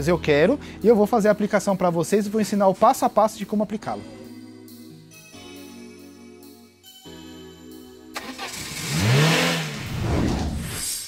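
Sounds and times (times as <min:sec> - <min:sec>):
car engine revving: 0:08.2 - 0:10.9.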